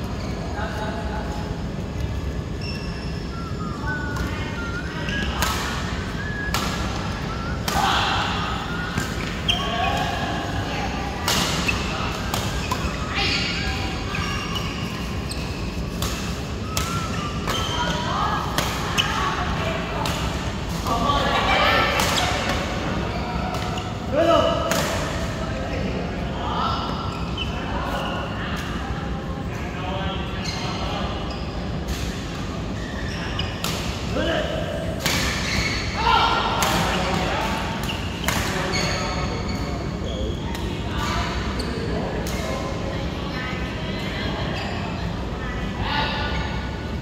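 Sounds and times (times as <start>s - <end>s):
players' voices: 0.0s - 47.0s.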